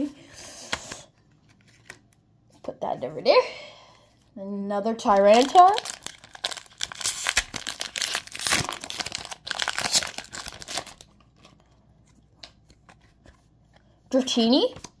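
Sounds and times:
cards being handled: 0.6s - 2.7s
foil wrapper tearing and crinkling: 5.0s - 11.6s.

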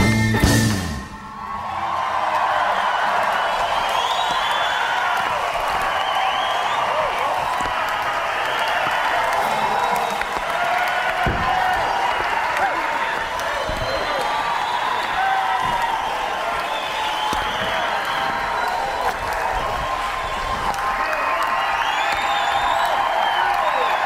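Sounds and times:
audience applauding and cheering: 0.4s - 24.0s.

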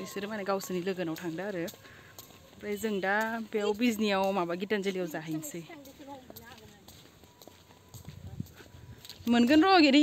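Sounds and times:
faint footsteps outdoors: 0.0s - 10.0s.

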